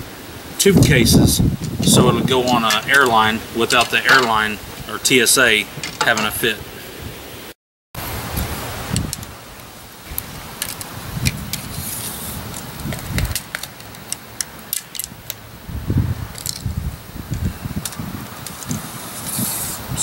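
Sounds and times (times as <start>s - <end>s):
fishing rod rattling: 1.6s - 4.6s, 5.6s - 6.4s.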